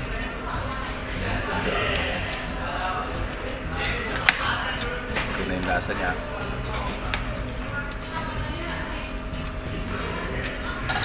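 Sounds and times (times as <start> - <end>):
faint voices: 0.0 - 11.0
steady low hum: 0.0 - 11.0.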